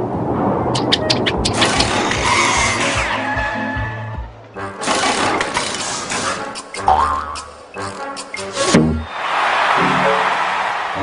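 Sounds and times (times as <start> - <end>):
cartoon background music: 2.3 - 9.1.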